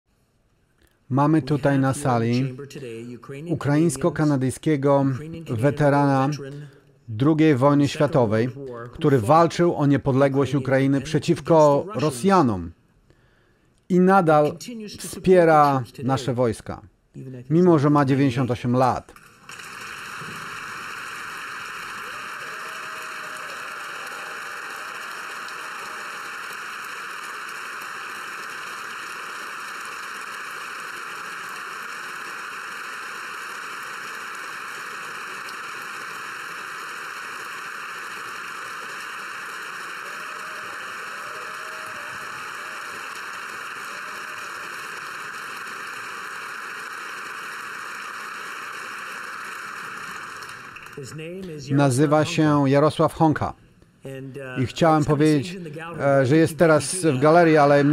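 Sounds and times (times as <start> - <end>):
crowd applause: 19.2 - 51.2, 56.2 - 57.9.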